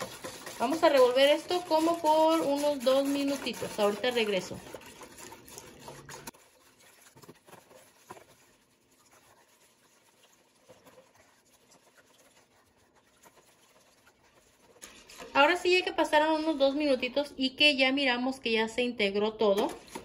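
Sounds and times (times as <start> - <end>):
whisk beating batter in a bowl: 0.0 - 17.7, 19.4 - 20.0.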